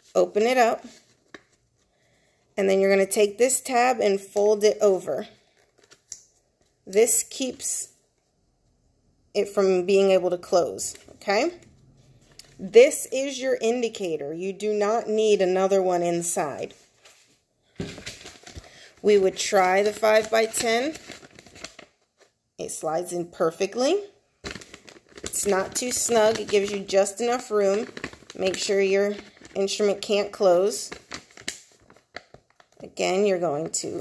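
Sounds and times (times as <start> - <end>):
paper and plastic pouch rustling: 0.0 - 2.0, 5.4 - 6.8, 16.3 - 22.4, 24.4 - 34.0.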